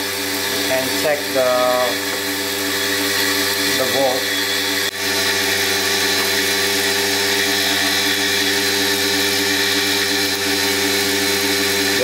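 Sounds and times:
electric motor humming: 0.0s - 12.0s.

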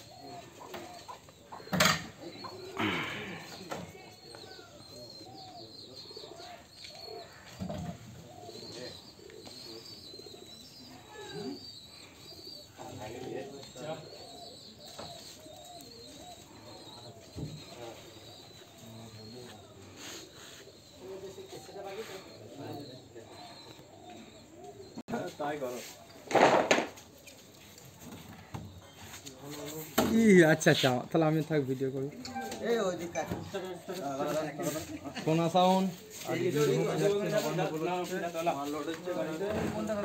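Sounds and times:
lower repeated bird calls: 0.0s - 40.0s.

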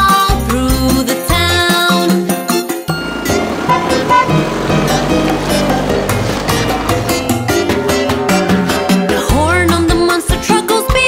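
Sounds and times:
background music: 0.0s - 11.0s
cartoon engine sound effect: 3.0s - 9.0s.

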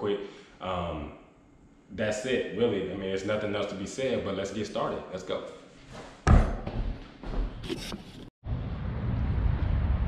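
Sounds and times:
low rumble: 8.4s - 10.0s.

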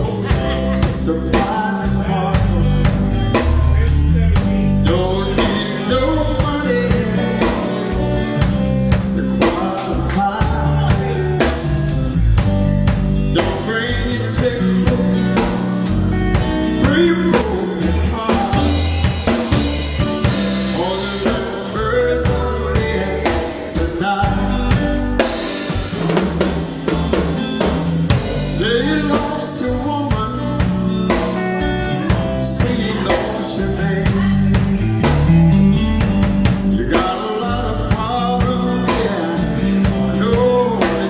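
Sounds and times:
drum kit with snare and cymbals: 0.0s - 41.0s
electric bass: 0.0s - 41.0s
electric guitar: 0.0s - 41.0s
keyboards: 0.0s - 41.0s.

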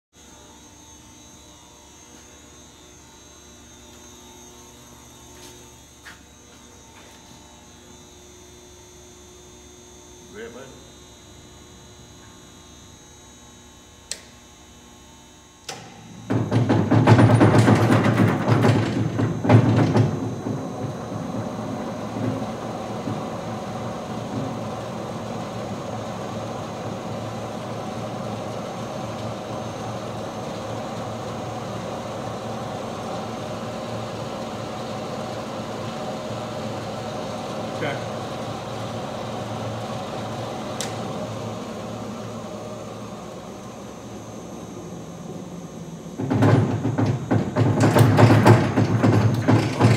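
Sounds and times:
machine running hum: 0.2s - 49.9s.

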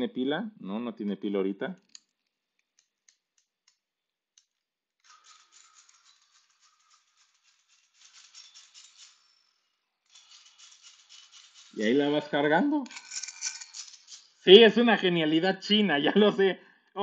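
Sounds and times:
hand dynamo whirring: 4.4s - 14.5s.

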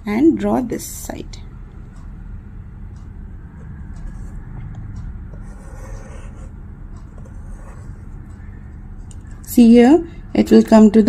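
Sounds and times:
compass scratching on paper: 5.4s - 8.2s.

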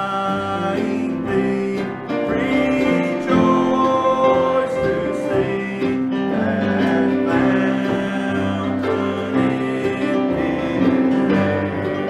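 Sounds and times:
acoustic guitar: 0.0s - 12.0s
acoustic string band playing: 0.0s - 12.0s
upright bass: 0.0s - 12.0s.

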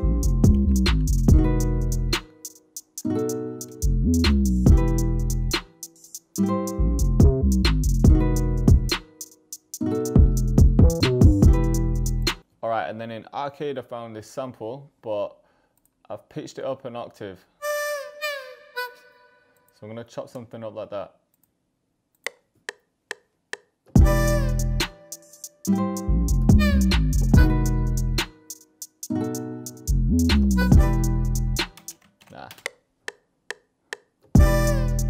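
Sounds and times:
person speaking: 19.7s - 21.2s, 30.5s - 32.7s
metronome ticks: 31.6s - 34.1s.

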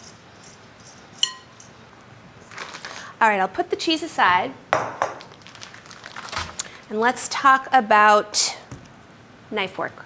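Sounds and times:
glass bowl clinking: 1.2s - 1.7s.

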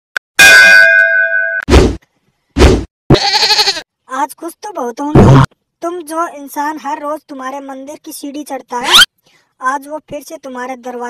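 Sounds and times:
wavering pitched cry: 8.8s - 9.1s.

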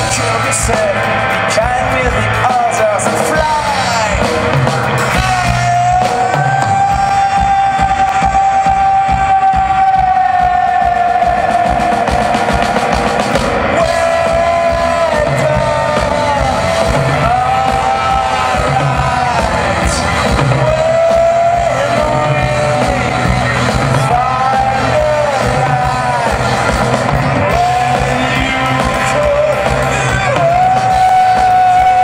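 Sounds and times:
live band music: 0.0s - 32.0s.

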